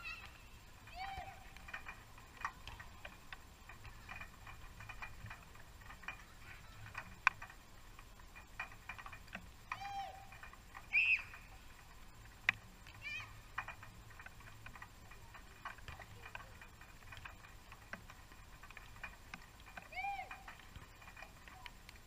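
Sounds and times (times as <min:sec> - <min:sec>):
players shouting: 0:00.0 - 0:01.5.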